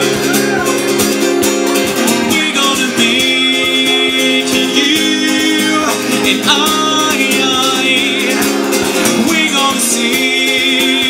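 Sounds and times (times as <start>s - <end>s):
acoustic guitar strumming: 0.0s - 11.0s
person singing: 0.0s - 11.0s.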